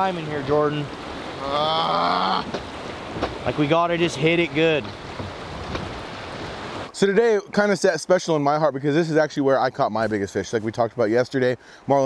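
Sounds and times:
wind rumbling on microphone: 0.0 - 6.9
river current rushing: 0.0 - 9.2.

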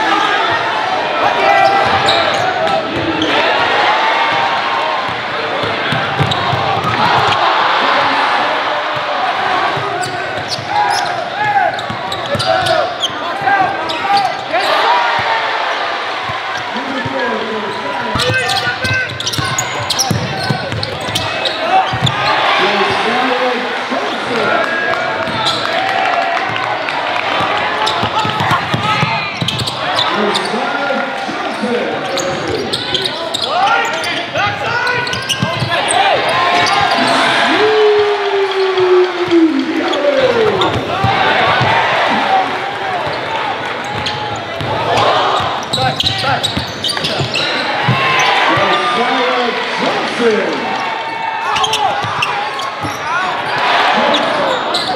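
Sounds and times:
indistinct crowd and player voices: 0.0 - 54.9.

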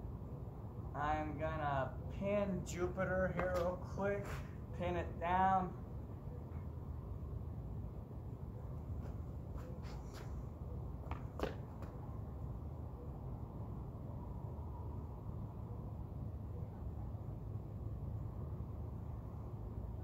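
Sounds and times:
low outdoor rumble: 0.0 - 20.0.

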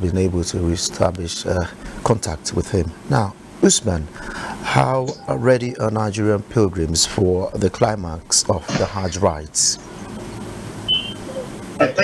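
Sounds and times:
man talking: 0.0 - 9.9
broadcast link hum and hiss: 0.0 - 12.0
short high beep: 10.9 - 11.3.

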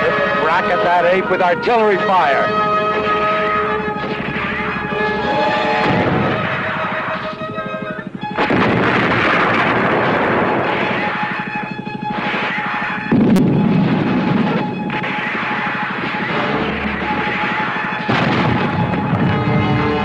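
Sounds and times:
film score: 0.0 - 20.0
artillery shell explosions: 3.0 - 20.0.

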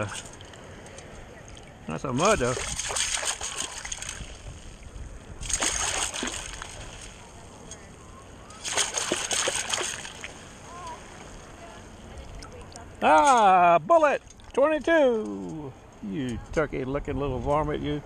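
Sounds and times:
water splashing through metal scoop: 2.3 - 4.4, 5.4 - 7.2, 8.6 - 10.3.

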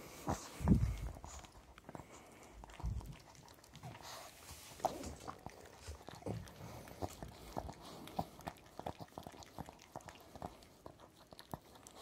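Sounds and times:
dog licking: 0.0 - 12.0.

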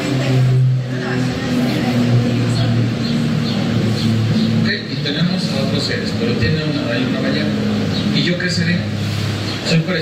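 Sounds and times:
man speaking: 4.6 - 9.0, 9.6 - 10.0.

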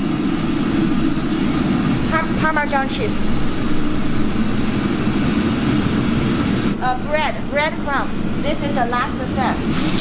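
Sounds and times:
gas burners and exhaust roar: 0.0 - 10.0.

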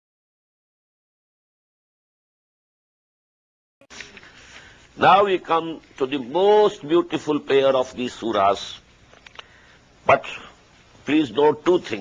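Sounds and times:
man speaking: 5.0 - 8.8, 10.0 - 12.0
faint clicks: 9.1 - 9.6.

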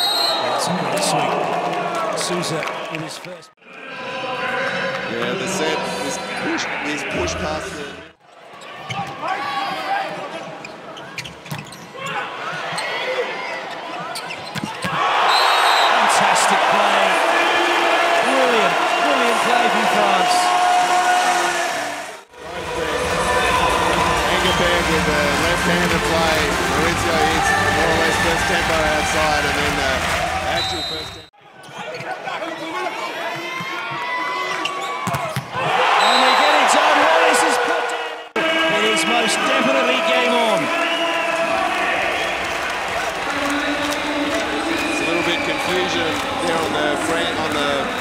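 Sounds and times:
crowd noise in large hall: 0.0 - 48.0.

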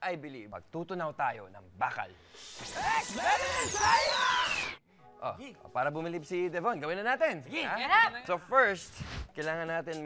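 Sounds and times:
warbling zapping effects: 2.2 - 4.8
high whistling tone gliding down: 2.3 - 4.8.

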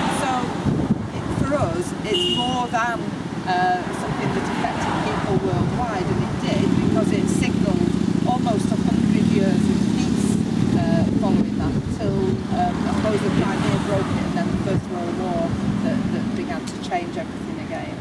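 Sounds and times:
woman speaking: 0.0 - 0.6, 1.2 - 18.0
road vehicle passing: 0.0 - 18.0.

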